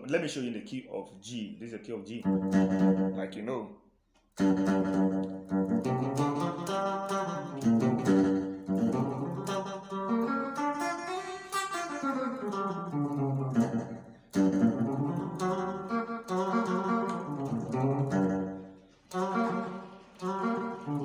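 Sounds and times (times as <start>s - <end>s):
electric guitar playing a scale: 2.2s - 3.3s, 4.4s - 21.0s.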